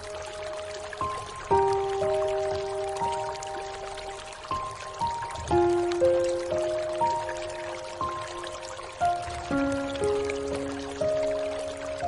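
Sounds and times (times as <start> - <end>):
rain hissing: 0.0 - 12.0
soft piano notes: 0.0 - 12.0.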